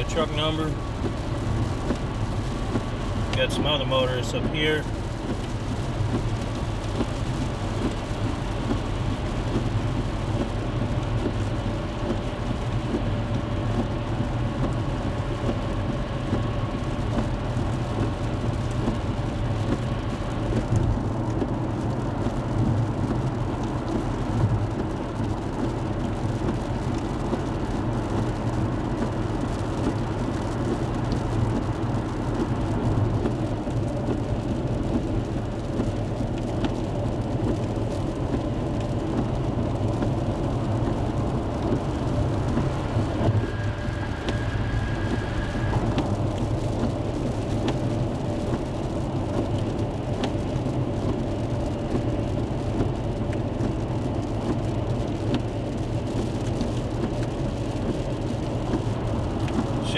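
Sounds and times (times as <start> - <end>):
vehicle road and engine noise: 0.0 - 59.9.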